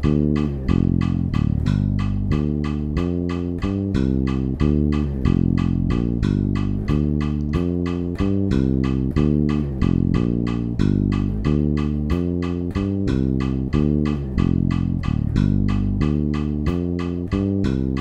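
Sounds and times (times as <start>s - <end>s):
electric bass guitar line: 0.0s - 18.0s
steady ticking: 0.0s - 18.0s.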